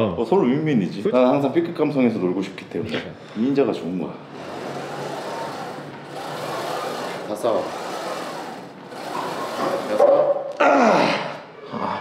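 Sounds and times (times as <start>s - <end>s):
squat machine carriage moving: 4.2s - 10.5s.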